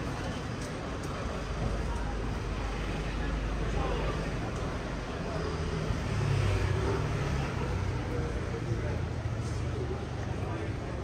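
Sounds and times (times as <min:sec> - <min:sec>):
indistinct voices of passers-by: 0:00.0 - 0:11.0.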